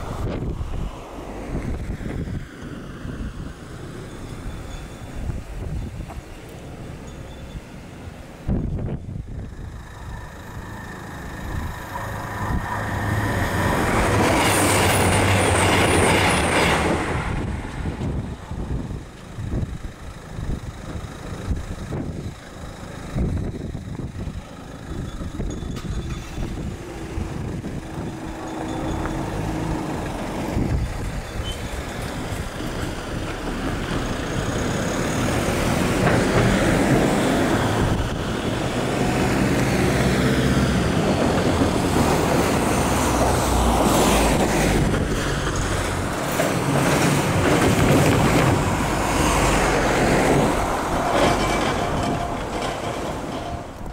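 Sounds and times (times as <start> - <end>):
train passing: 0.0 - 21.8, 24.2 - 53.9
road traffic: 0.0 - 53.9.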